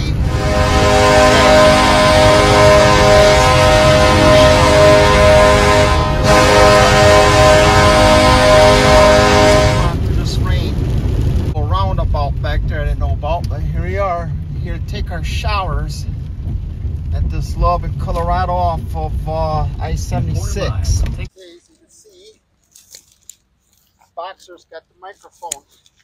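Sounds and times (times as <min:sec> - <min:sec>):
loud steady horn tone: 0:00.0 - 0:10.1
low rumble: 0:00.0 - 0:21.3.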